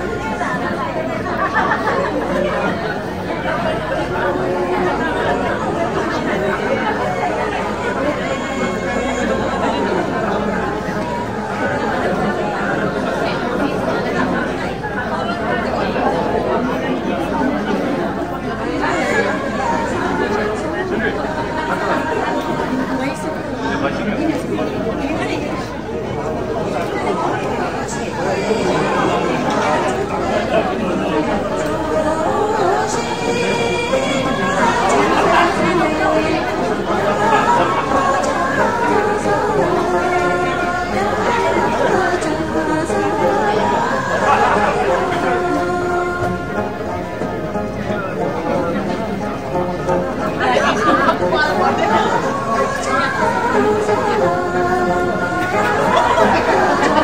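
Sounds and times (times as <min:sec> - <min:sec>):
chatter of overlapping voices: 0:00.0 - 0:57.0.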